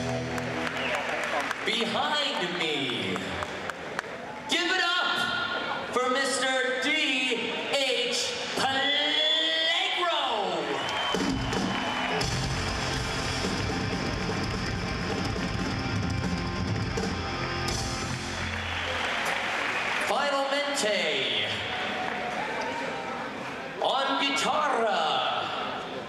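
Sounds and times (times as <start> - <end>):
punk rock band playing: 11.2 - 18.5.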